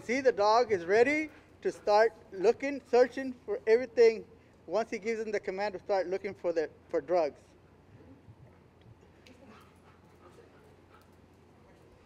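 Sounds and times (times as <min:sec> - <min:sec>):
small dog sounds: 0:09.3 - 0:12.0.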